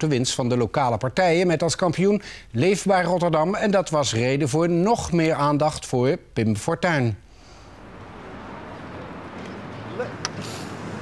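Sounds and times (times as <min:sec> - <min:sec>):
street noise: 0:07.4 - 0:11.0.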